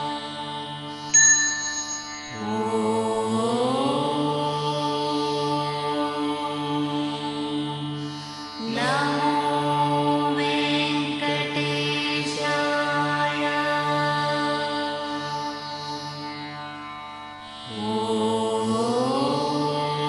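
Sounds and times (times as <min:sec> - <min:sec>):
devotional chant music: 0:00.0 - 0:20.0.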